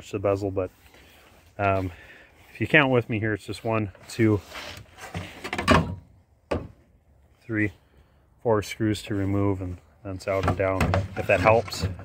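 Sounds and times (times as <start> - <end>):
rustling scrape: 4.0 - 5.6, 11.0 - 12.0.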